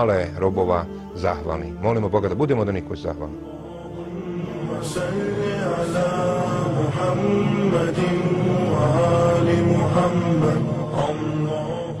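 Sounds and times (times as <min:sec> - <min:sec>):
chanted vocal music: 0:00.0 - 0:12.0.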